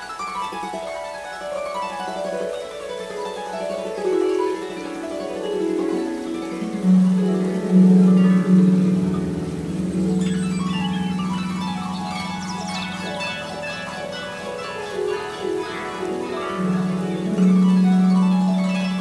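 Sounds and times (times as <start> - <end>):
harp playing plucked notes: 0.0 - 19.0.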